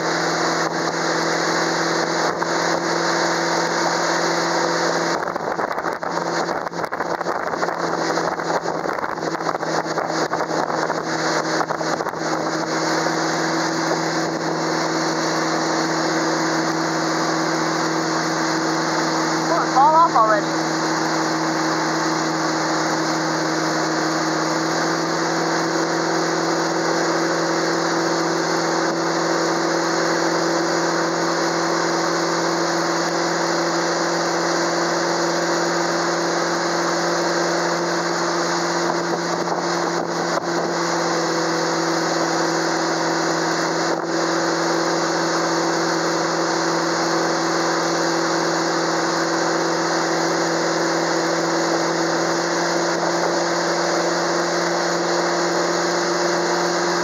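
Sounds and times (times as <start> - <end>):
motorboat engine droning: 0.0 - 57.0
rush of wake water: 0.0 - 57.0
wind: 0.0 - 57.0.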